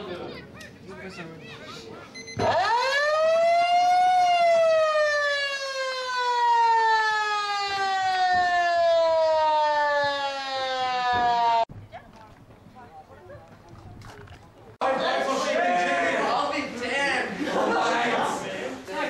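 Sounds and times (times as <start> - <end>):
siren wailing: 2.4 - 11.7.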